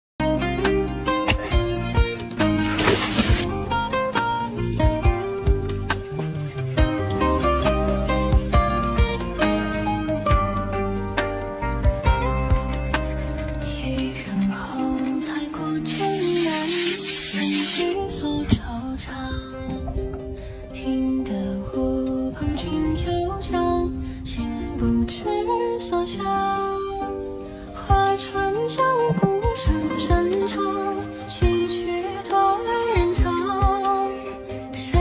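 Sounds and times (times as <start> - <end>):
plucked string melody with beat: 0.2 - 21.1, 24.9 - 35.0
short hiss: 2.6 - 3.5, 16.0 - 18.0.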